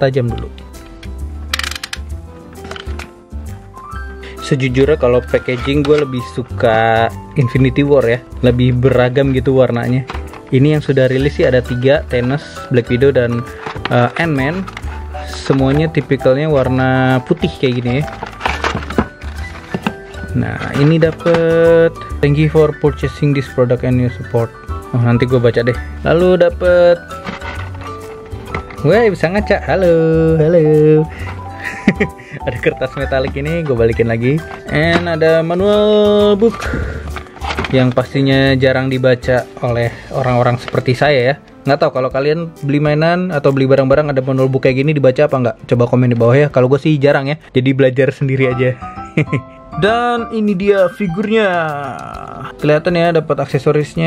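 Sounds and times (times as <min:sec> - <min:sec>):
background music with steady beat: 0:00.0 - 0:54.0
plastic blister tray handling: 0:09.0 - 0:22.0, 0:26.4 - 0:29.5, 0:32.5 - 0:39.0.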